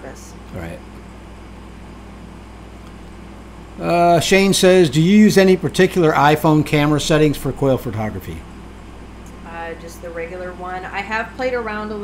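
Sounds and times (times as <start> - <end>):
faint hiss and low hum: 0.0 - 12.0
man speaking: 0.5 - 0.8, 3.8 - 8.4.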